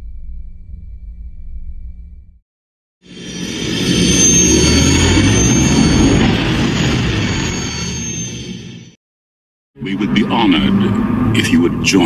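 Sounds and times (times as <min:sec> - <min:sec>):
spaceship flyby rush and whine: 0:03.1 - 0:09.0.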